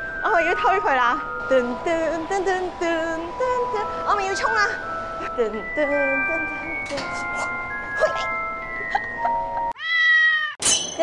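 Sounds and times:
steady chime tones: 0:00.0 - 0:09.7
cartoon cat meow: 0:09.8 - 0:10.6.

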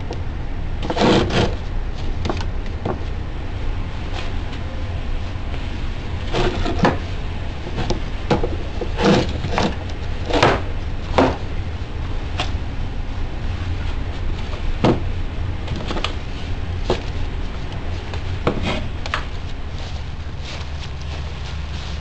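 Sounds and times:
low hum: 0:00.0 - 0:22.0.

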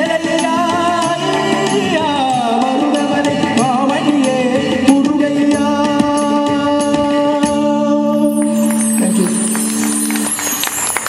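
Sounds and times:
live band holding a note: 0:08.0 - 0:11.0
jingling rattling percussion: 0:08.2 - 0:11.0.

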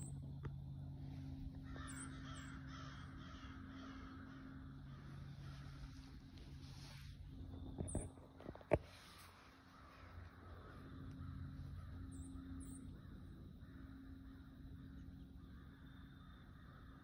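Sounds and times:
faint bird calls: 0:00.0 - 0:08.2, 0:08.8 - 0:17.0
low steady hum: 0:00.0 - 0:17.0.

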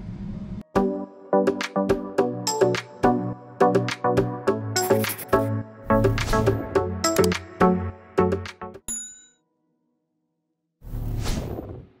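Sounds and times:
background music: 0:00.6 - 0:08.8
bell-like ding: 0:08.9 - 0:09.5.

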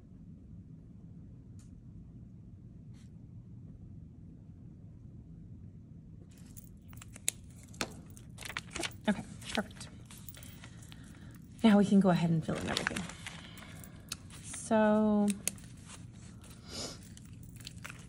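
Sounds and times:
room hum: 0:00.0 - 0:18.0
paper notebook rustling: 0:06.3 - 0:18.0.

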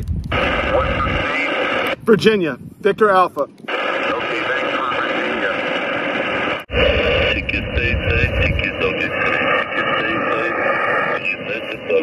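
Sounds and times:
radio static hiss: 0:00.0 - 0:12.0
faint garbled radio voices: 0:00.3 - 0:02.0, 0:03.2 - 0:12.0
low rumble: 0:03.7 - 0:12.0.

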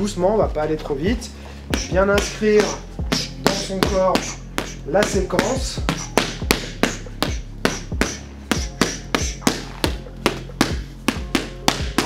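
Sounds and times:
background music: 0:00.0 - 0:12.0
boxing gloves smacking mitts: 0:01.7 - 0:12.0.

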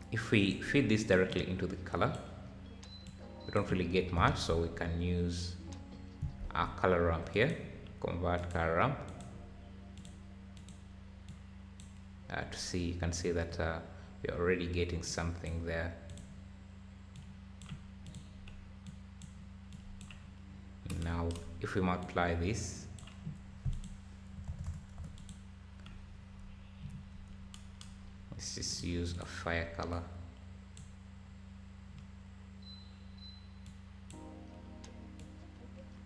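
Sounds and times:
low electrical hum: 0:00.0 - 0:36.0
computer mouse clicks: 0:08.4 - 0:09.3, 0:10.0 - 0:12.0, 0:17.2 - 0:20.3, 0:23.0 - 0:26.0
keyboard clicks: 0:08.4 - 0:12.0, 0:17.2 - 0:20.3, 0:23.0 - 0:26.0.

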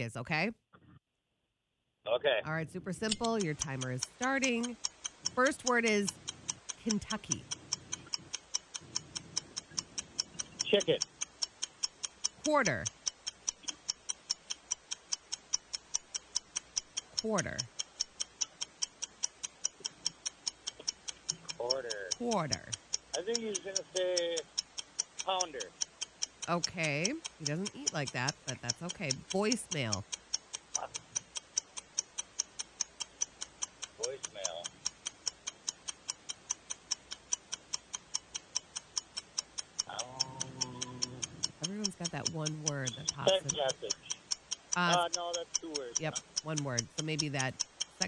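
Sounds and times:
countdown timer ticking: 0:02.5 - 0:48.0
person saying oh: 0:39.9 - 0:41.4.

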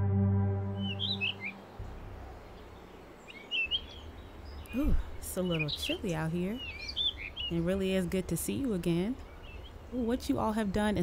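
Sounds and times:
low music chord: 0:00.0 - 0:02.5
faint outdoor background: 0:00.0 - 0:11.0
birds chirping: 0:00.6 - 0:11.0.

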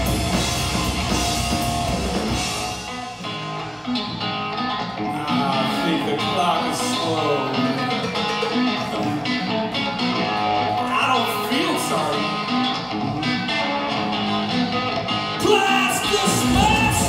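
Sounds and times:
crowd chatter: 0:00.0 - 0:17.0
rock band electric guitar: 0:00.0 - 0:17.0.

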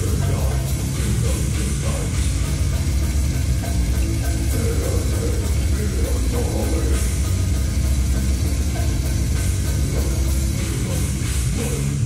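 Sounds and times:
live heavy band playing: 0:00.0 - 0:12.0.

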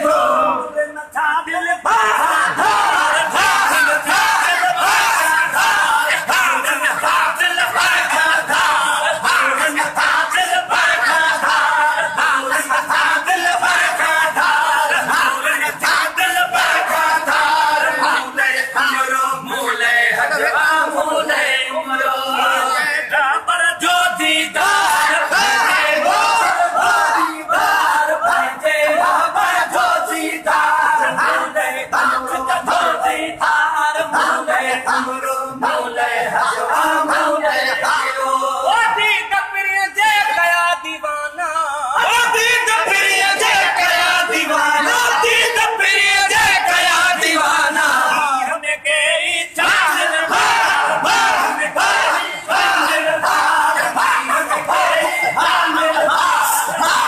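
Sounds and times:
crowd of men chanting: 0:00.0 - 0:41.0, 0:41.6 - 0:57.0.

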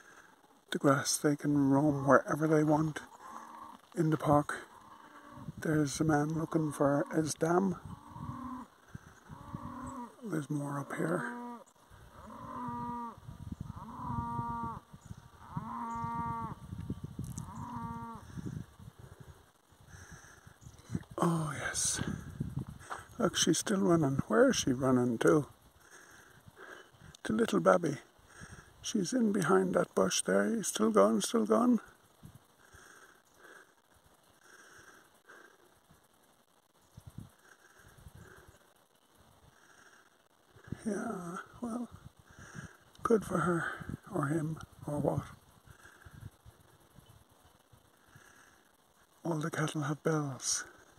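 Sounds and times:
cow mooing: 0:03.2 - 0:03.9, 0:09.3 - 0:10.3, 0:10.9 - 0:14.8, 0:15.4 - 0:16.6, 0:17.3 - 0:18.2.

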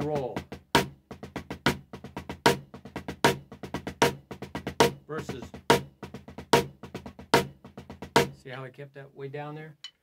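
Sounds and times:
drumsticks playing drum rudiment: 0:00.0 - 0:08.6.

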